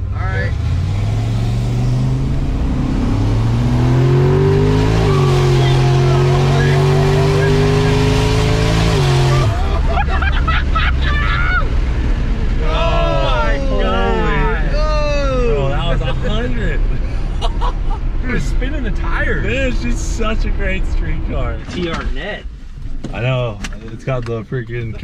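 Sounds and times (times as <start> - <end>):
car engine at full throttle: 0.0 - 25.0.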